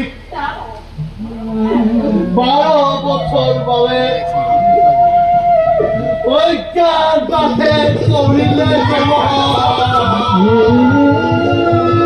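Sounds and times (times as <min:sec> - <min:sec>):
person declaiming in sing-song voice: 0:05.8 - 0:12.0.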